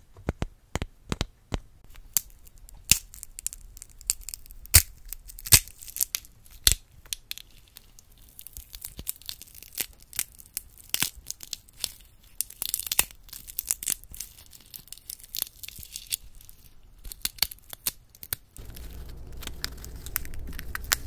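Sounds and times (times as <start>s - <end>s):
brittle pieces snapping and crackling: 1.9s - 21.0s.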